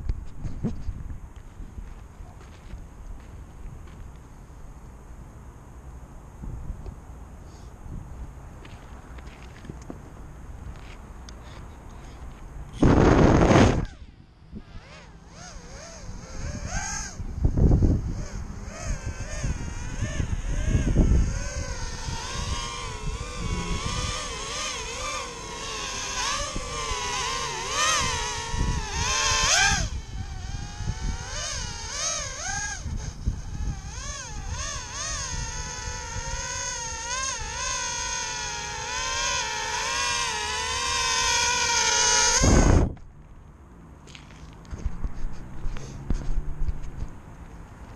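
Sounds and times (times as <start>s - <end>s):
quadcopter motors buzzing whine: 10.8s - 43.3s.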